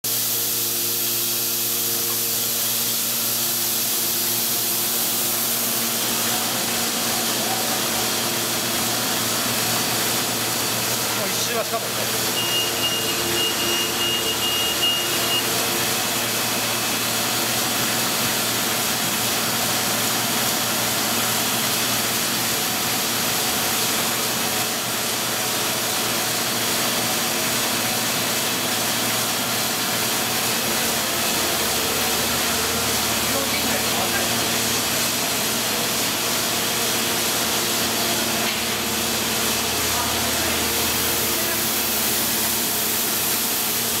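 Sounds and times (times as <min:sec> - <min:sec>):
printing press humming and hissing: 0:00.0 - 0:44.0.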